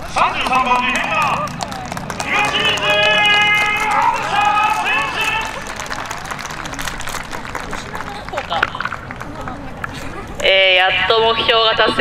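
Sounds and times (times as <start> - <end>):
outdoor crowd noise: 0.0 - 12.0
announcer over loudspeaker: 2.2 - 5.6, 10.5 - 12.0.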